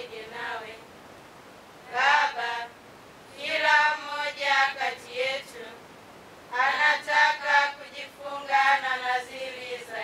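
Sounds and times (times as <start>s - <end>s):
nuns singing in unison: 0.0s - 0.9s, 1.8s - 10.0s.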